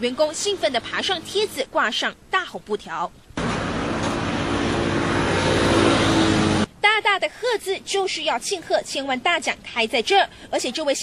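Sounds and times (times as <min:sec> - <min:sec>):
vehicle engine and road noise: 0:03.2 - 0:06.8.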